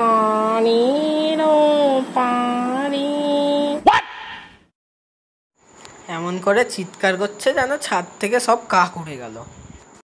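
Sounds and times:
brief sharp sound: 0:03.8 - 0:04.6.

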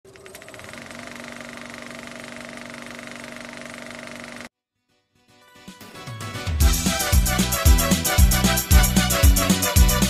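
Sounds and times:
film projector clatter: 0:00.1 - 0:04.5.

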